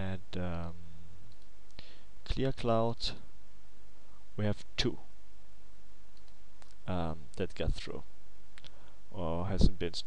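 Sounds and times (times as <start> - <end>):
steady low hum and hiss: 0.0 - 10.0
computer mouse clicks: 1.3 - 1.8, 6.1 - 7.4.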